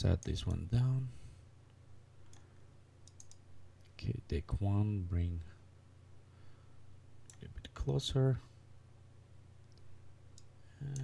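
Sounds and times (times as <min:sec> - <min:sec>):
faint computer mouse clicks: 0:02.2 - 0:03.4.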